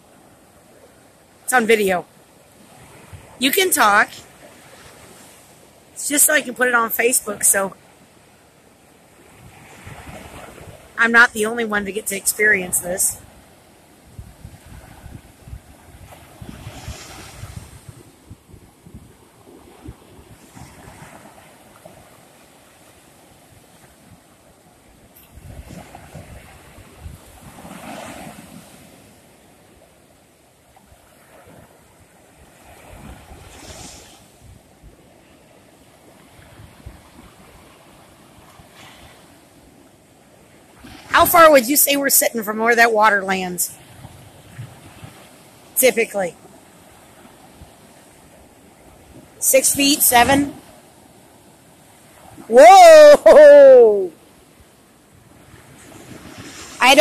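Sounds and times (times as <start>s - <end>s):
surf waves breaking on sand: 0.0s - 57.0s
wind buffeting microphone: 14.0s - 21.4s, 25.2s - 28.0s, 43.8s - 45.3s.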